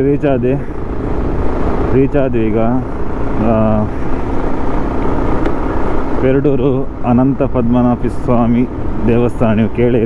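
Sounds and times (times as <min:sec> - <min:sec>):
motorcycle engine running: 0:00.0 - 0:10.0
wind rumble: 0:00.0 - 0:10.0.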